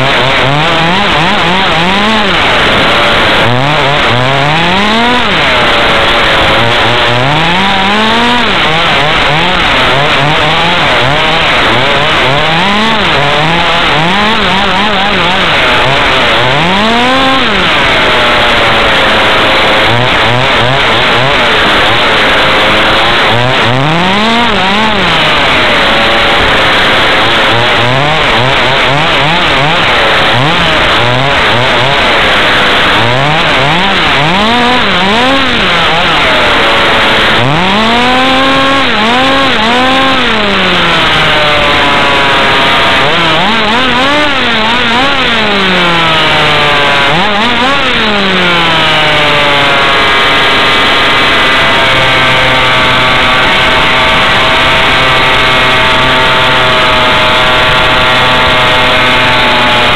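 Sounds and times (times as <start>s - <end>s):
small two-stroke engine revving: 0.0s - 59.9s.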